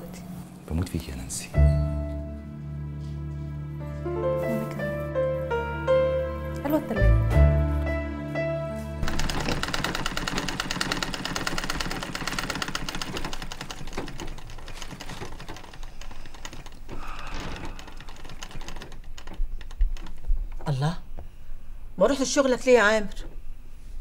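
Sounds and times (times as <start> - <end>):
music: 0.1 - 10.6
sewing machine running: 9.0 - 19.4.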